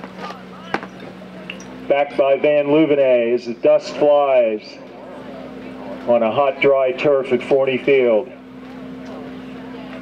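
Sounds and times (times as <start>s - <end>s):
steady low hum: 0.0s - 10.0s
man commentating: 1.9s - 4.8s, 6.1s - 8.3s.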